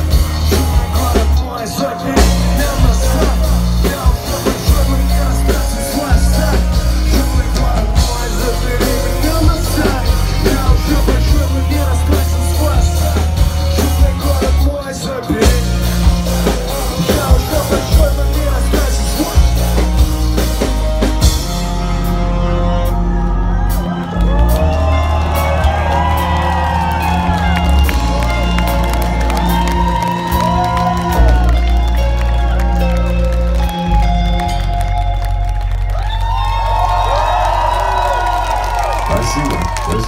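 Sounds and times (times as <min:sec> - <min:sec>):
crowd whooping and cheering: 0:00.0 - 0:40.0
live rock band playing: 0:00.0 - 0:40.0.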